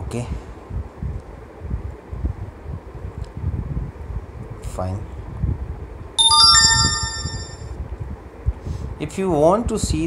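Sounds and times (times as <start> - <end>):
electronic chime: 6.2 - 7.6.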